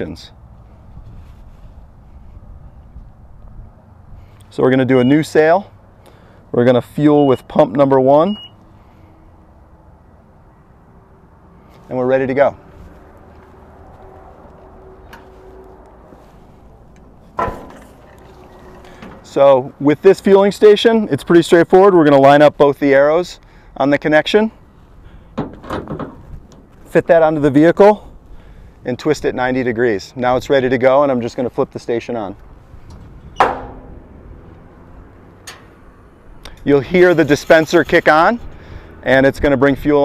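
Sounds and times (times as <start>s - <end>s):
fuel nozzle clunk: 17.0s - 19.3s, 32.8s - 34.0s, 35.4s - 35.8s.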